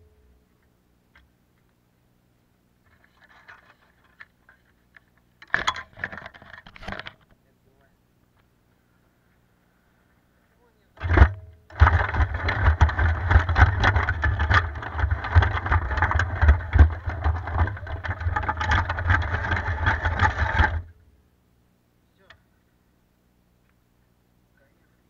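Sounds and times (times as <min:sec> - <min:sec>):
tracked robot rattling on concrete: 0:11.1 - 0:20.9.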